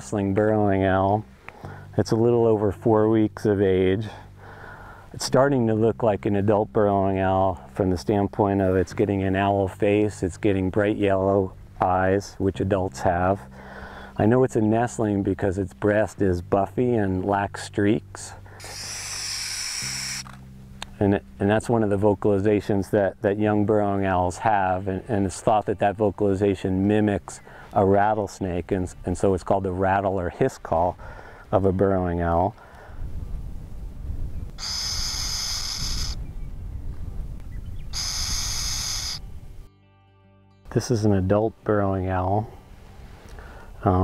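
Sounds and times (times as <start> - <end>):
owl chick hissing: 18.5 - 20.4, 34.6 - 36.2, 37.9 - 39.2
low wind rumble: 32.2 - 39.7.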